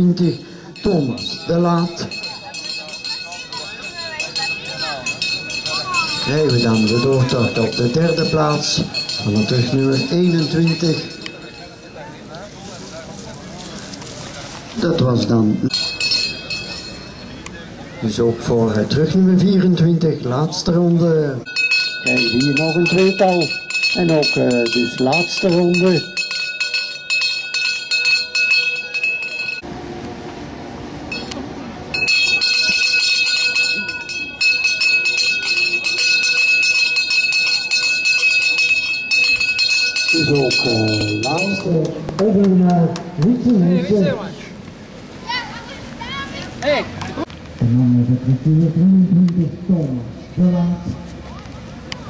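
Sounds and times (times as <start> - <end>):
handheld cowbell ringing rapidly: 0.0 - 12.2, 15.7 - 17.4, 21.5 - 29.6, 31.1 - 41.8
faint voices talking: 0.0 - 20.9, 31.1 - 52.0
outdoor background noise: 0.0 - 52.0.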